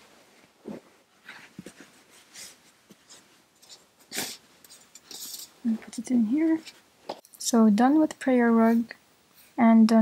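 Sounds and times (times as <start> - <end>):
fabric rustling: 0.0 - 7.2.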